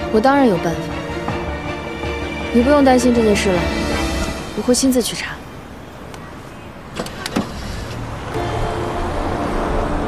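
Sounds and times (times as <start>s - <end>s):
background music: 0.0s - 5.6s, 8.3s - 10.0s
passing traffic: 0.0s - 10.0s
car door opening: 6.9s - 8.0s.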